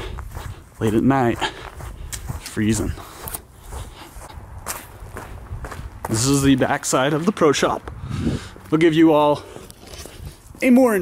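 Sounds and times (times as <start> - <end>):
steady low rumble: 0.0 - 7.2
footsteps outdoors: 0.0 - 11.0.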